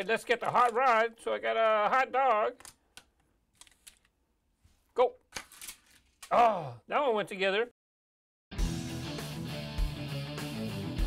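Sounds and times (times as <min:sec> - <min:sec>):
plastic toy clicks: 0:00.3 - 0:01.0.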